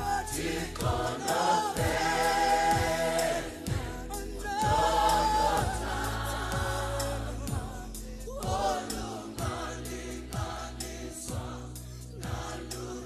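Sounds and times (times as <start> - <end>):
low thumping beat: 0.0 - 12.7
choir singing gospel song: 0.0 - 13.0.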